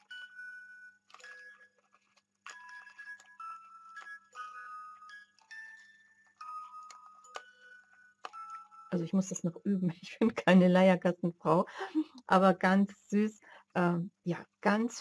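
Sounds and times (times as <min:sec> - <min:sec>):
hand-cranked music box melody: 0:00.0 - 0:10.4.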